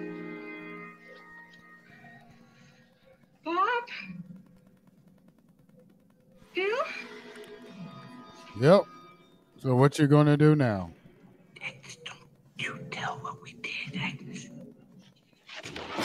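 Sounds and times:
held musical chord: 0.0 - 1.9, 8.1 - 11.0.

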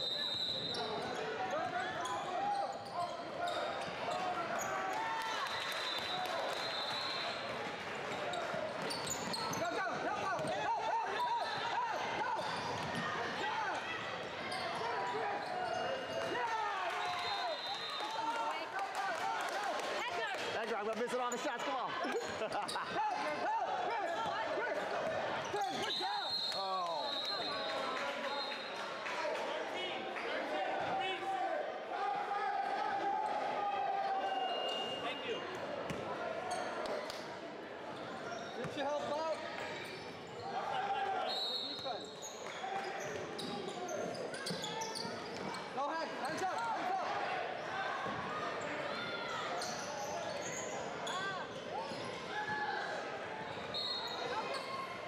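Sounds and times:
referee whistle blasts: 0.0 - 0.9, 5.8 - 7.4, 17.0 - 18.1, 25.8 - 28.7, 34.2 - 35.4, 41.2 - 42.1, 53.7 - 54.3.

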